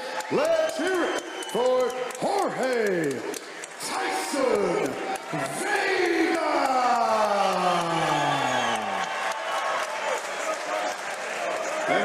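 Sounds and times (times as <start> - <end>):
crowd cheering: 0.0 - 12.0.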